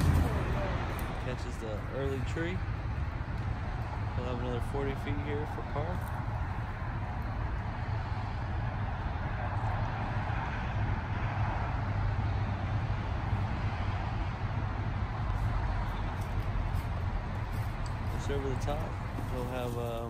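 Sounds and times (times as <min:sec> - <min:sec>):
hiss of passing cars: 0:00.0 - 0:20.0
low traffic rumble: 0:00.0 - 0:20.0.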